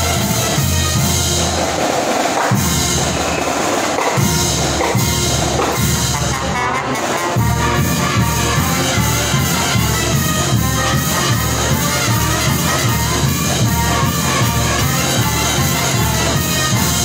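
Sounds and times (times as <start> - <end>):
marching band playing: 0.0 - 17.0.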